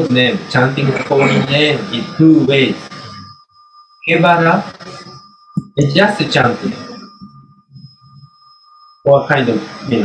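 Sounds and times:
faint low murmur: 0:00.0 - 0:03.4, 0:05.6 - 0:08.3
steady high-pitched tones: 0:00.0 - 0:10.0.

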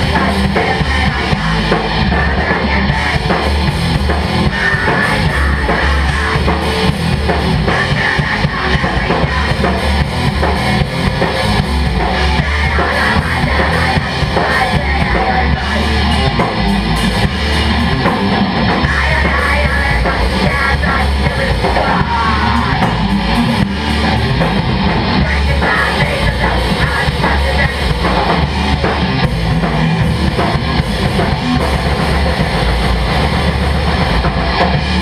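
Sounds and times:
driving bass drum: 0:00.0 - 0:35.0
live punk band playing: 0:00.0 - 0:35.0.

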